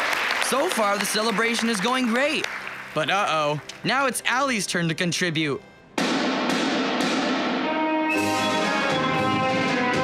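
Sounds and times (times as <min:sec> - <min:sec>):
marching snare drums: 0:06.0 - 0:09.8.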